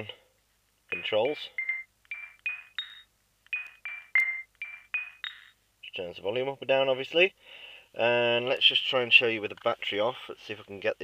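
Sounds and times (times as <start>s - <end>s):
phone ringer chime: 0.9s - 5.6s.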